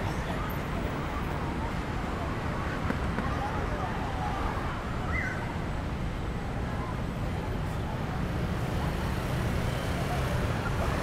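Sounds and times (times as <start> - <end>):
faint voices: 0.0 - 11.0
low rumble of road traffic: 0.0 - 11.0.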